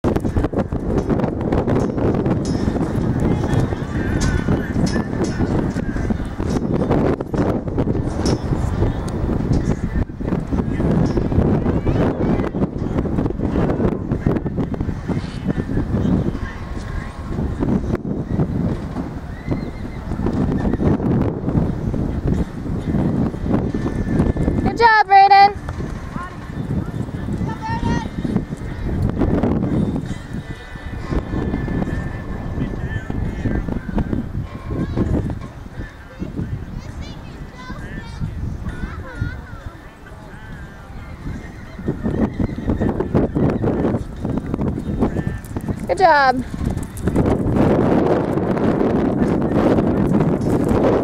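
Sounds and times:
horse hooves galloping on dirt: 44.7s - 47.6s.

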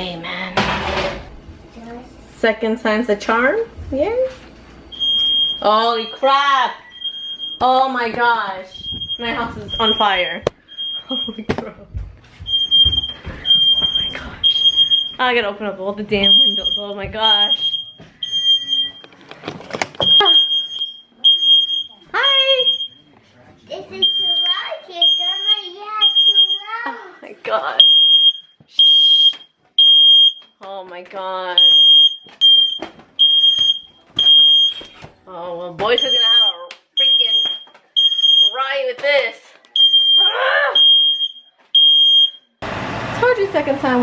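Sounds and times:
smoke alarm beeping: 4.9s - 8.0s, 8.6s - 11.6s, 12.3s - 19.2s, 20.0s - 23.2s, 24.0s - 26.8s, 27.8s - 30.6s, 31.6s - 35.1s, 35.9s - 38.8s, 39.7s - 42.6s
person crying out: 40.2s - 40.8s.

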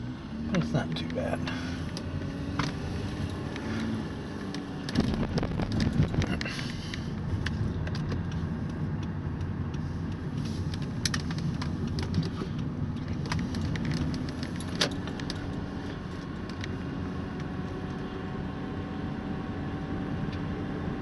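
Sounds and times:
car engine and road rumble: 0.0s - 21.0s
small clicks and rattles: 2.6s - 16.8s.

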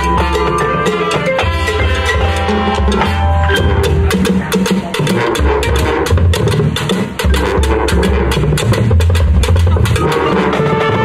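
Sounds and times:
drums and mallet percussion: 0.0s - 11.0s
marching band playing: 0.0s - 11.0s.

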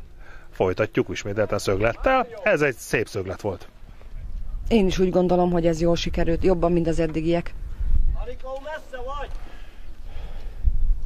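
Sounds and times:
wind buffeting microphone: 3.2s - 11.0s.

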